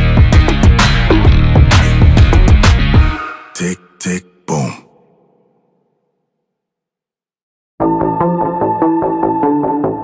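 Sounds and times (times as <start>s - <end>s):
short voice-like shouts: 3.6s - 5.7s.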